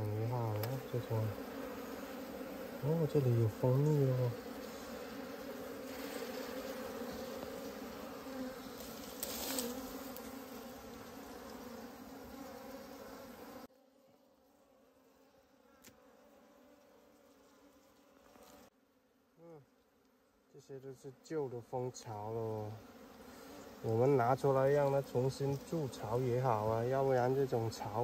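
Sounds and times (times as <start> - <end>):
honeybees buzzing: 0.0 - 28.0.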